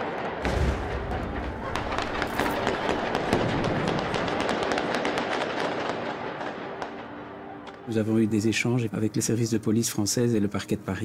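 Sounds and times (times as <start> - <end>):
gunshots in rapid succession: 0.0 - 7.0
loud blasts: 0.4 - 6.6.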